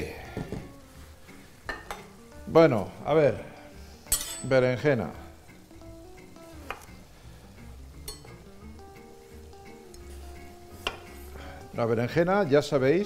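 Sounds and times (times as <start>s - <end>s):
vegetables sizzling in oil: 0.0s - 13.0s.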